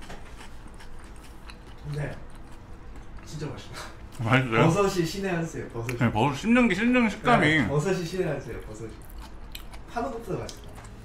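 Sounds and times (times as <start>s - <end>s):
man chewing: 0.0s - 4.6s, 8.9s - 11.0s.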